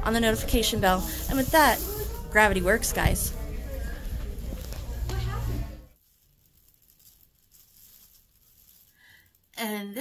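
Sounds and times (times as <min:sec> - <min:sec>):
plastic bag rustling: 0:00.4 - 0:09.6.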